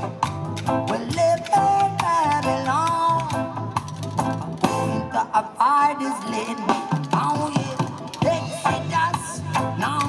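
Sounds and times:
choppy guitar strums: 0.0s - 5.5s, 6.1s - 10.0s
person singing: 0.8s - 3.7s, 4.9s - 10.0s.

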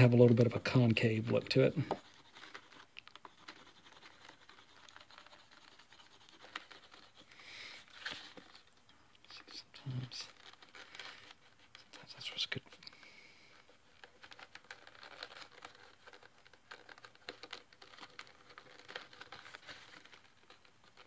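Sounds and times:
hand tool scratching leather: 1.4s - 7.3s.

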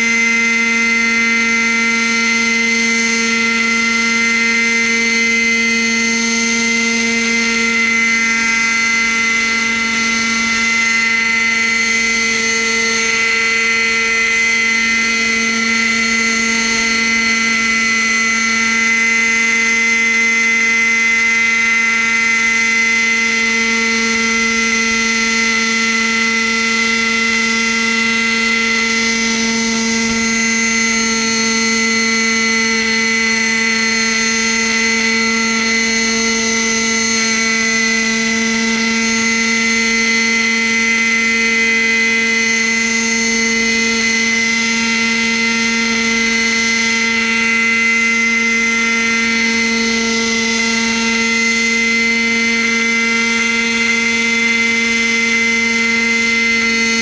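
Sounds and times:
model helicopter engine whine: 0.0s - 57.0s.

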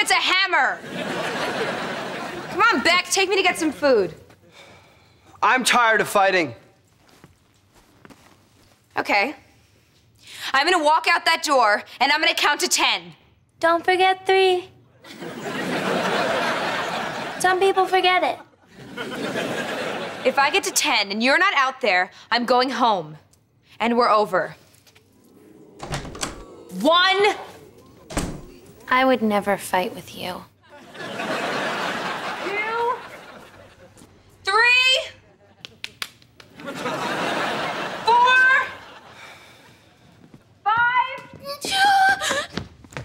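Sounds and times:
woman speaking: 2.5s - 4.2s, 9.0s - 9.4s, 20.2s - 23.2s, 26.7s - 28.1s, 28.8s - 30.6s, 32.4s - 33.2s, 38.0s - 38.8s
door being pulled open: 25.3s - 26.7s, 27.4s - 28.9s
door thump: 25.8s - 26.5s, 28.0s - 28.7s.

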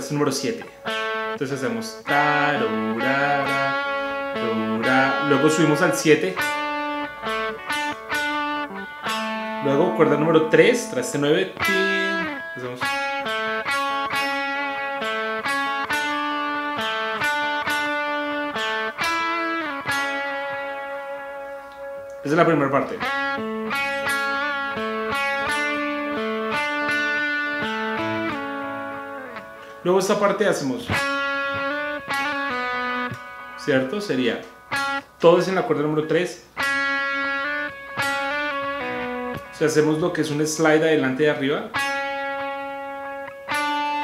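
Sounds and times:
electric guitar lead notes: 0.0s - 44.0s.

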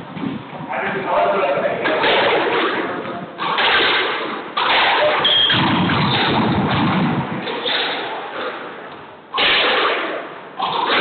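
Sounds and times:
squash ball sharp crack: 1.9s - 11.0s.

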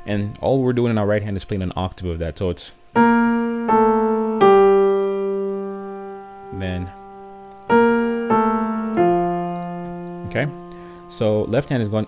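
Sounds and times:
piano notes in octaves: 2.8s - 12.0s.

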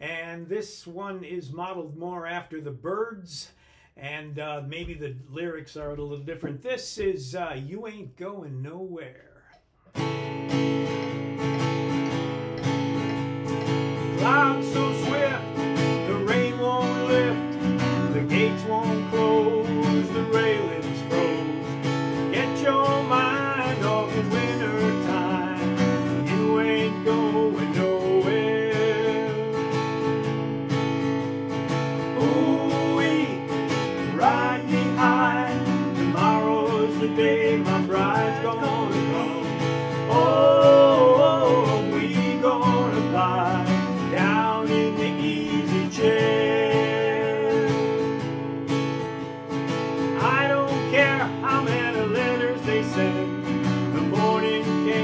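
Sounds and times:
acoustic guitar strumming: 9.8s - 55.0s
sliding guitar melody: 9.9s - 55.0s.

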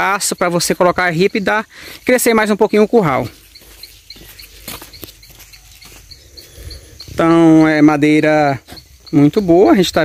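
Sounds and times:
faint high chirp: 0.0s - 10.0s.

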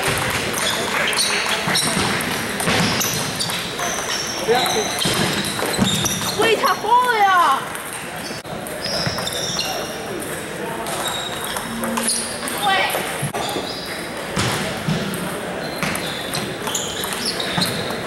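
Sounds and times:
table tennis balls clicking: 16.0s - 18.0s.

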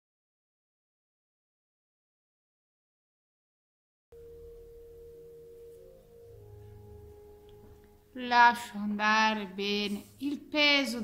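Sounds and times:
relaxation music held tones: 4.1s - 11.0s.

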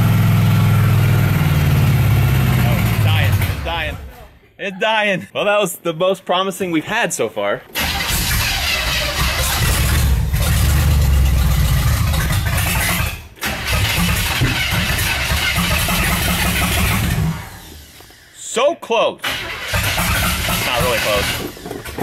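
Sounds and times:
car engine cranking and running roughly: 0.0s - 4.2s, 7.7s - 18.2s, 19.2s - 22.0s.

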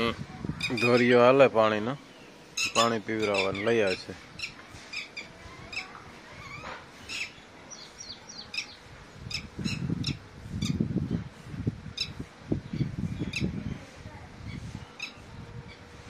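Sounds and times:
lapwing calling: 0.5s - 10.8s, 14.4s - 15.9s.

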